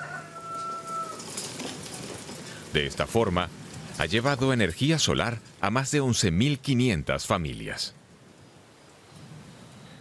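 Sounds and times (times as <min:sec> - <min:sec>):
rooster crowing: 0:00.0 - 0:01.4.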